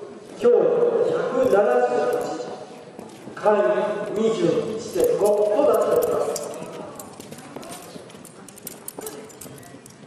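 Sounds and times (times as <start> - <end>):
hooves clip-clopping: 4.0 - 10.0.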